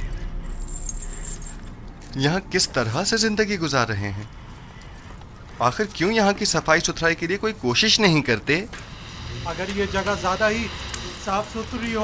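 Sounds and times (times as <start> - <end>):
metal chains clinking: 0.0 - 2.6, 5.9 - 12.0
high metallic ringing: 0.0 - 2.8, 8.8 - 12.0.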